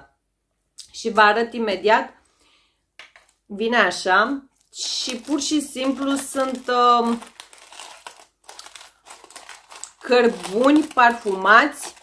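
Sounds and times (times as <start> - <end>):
aluminium foil crinkling: 4.5 - 12.0.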